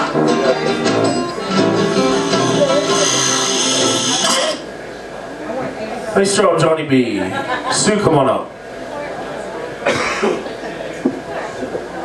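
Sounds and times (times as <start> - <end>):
low voices: 0.0 - 6.2
person coughing: 9.9 - 10.4.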